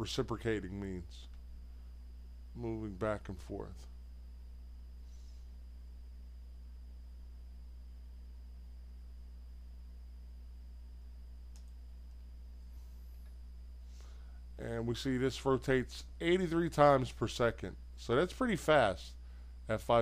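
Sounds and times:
faint high whine: 0:00.0 - 0:20.0
low electrical hum: 0:00.0 - 0:20.0
faint click: 0:11.5 - 0:12.3.

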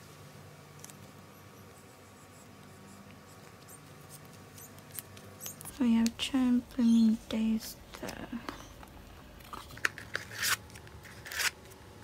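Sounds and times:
low steady hum: 0:00.0 - 0:12.0
card rustling in plastic sleeve: 0:09.4 - 0:11.8.

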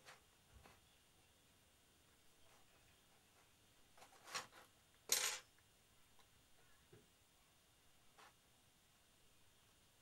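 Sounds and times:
paper rustle: 0:02.5 - 0:04.7.

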